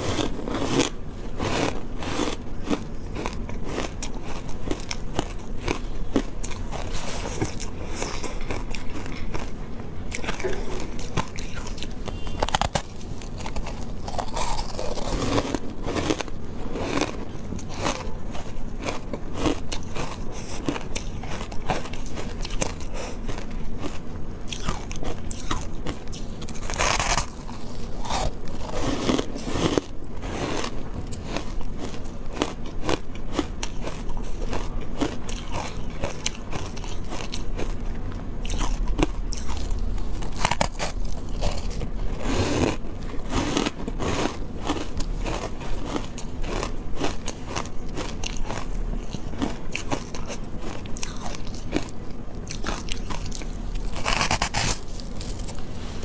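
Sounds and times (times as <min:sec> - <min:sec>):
ice crunching being chewed: 0:00.0 - 0:56.0.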